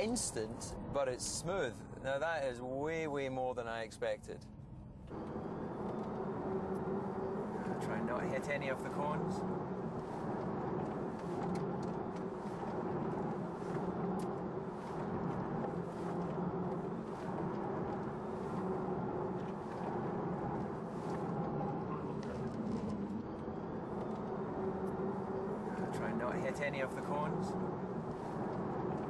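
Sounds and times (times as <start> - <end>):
electric motor hum: 4.9 - 29.0
tyre and road noise: 5.1 - 29.0.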